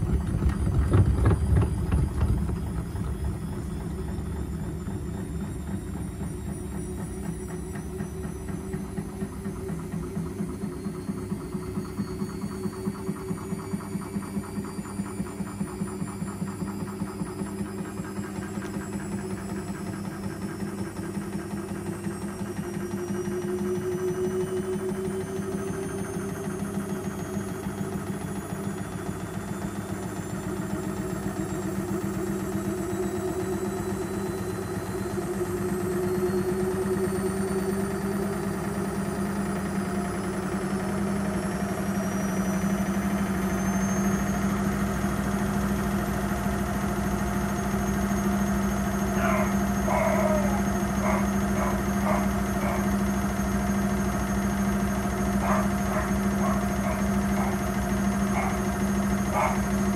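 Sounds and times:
washing machine motor whine: 0.0 - 59.9
steady hum: 48.5 - 59.9.

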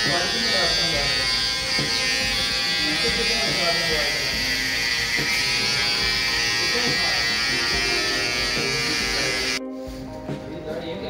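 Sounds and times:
electric trimmer buzzing: 0.0 - 9.6.

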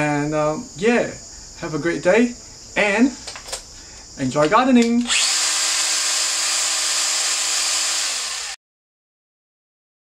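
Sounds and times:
battery garden tool whining: 4.8 - 8.6.

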